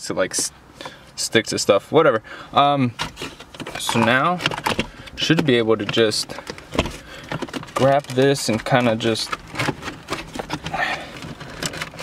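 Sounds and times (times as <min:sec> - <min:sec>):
handling clicks and knocks: 0:03.0 - 0:12.0.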